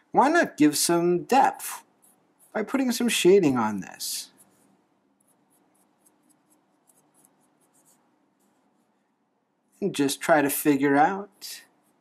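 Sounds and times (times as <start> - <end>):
felt-tip marker scratching paper: 2.0 - 2.7, 4.3 - 8.9, 11.6 - 12.0.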